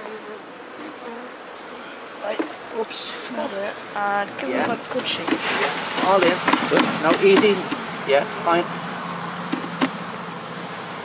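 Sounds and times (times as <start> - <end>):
honeybees buzzing: 0.0 - 11.0
short knocks: 4.3 - 7.9.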